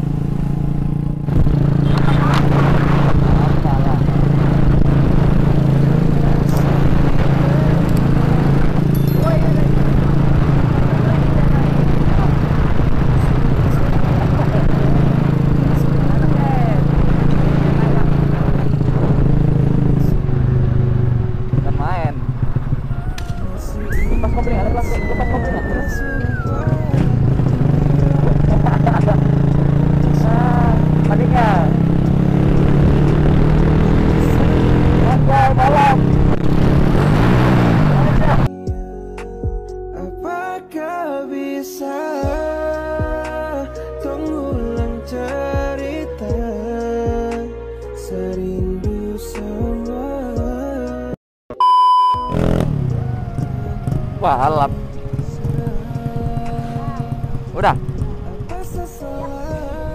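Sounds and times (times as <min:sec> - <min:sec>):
motorcycle engine running: 0:00.0 - 0:38.5, 0:52.3 - 0:59.9.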